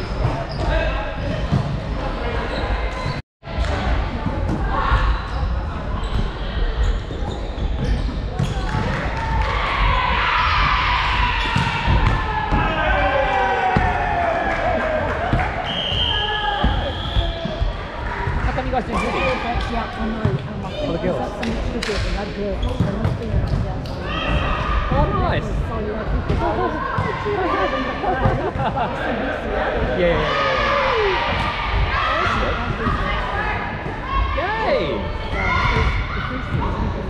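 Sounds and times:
volleyballs struck and bouncing: 7.8 - 12.7.

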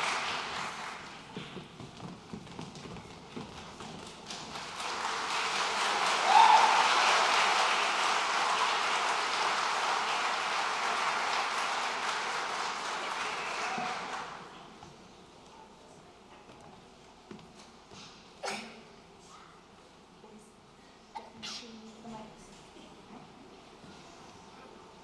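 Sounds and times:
audience applause: 0.0 - 1.5, 4.1 - 14.6
footsteps: 1.0 - 4.5.

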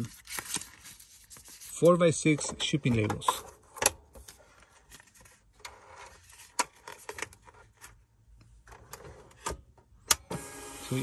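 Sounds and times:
paper rustling: 0.0 - 1.9.

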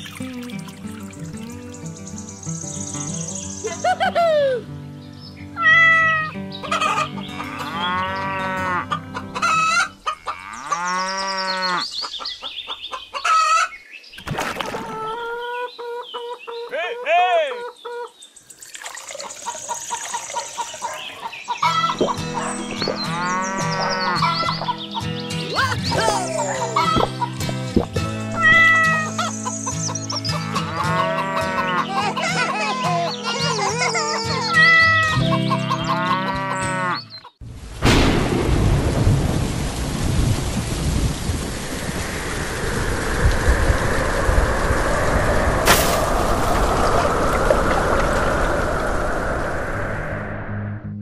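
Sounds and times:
farm animal calls: 5.6 - 13.7, 19.5 - 25.0, 28.4 - 32.2, 34.6 - 37.3
background music: 21.7 - 37.1.

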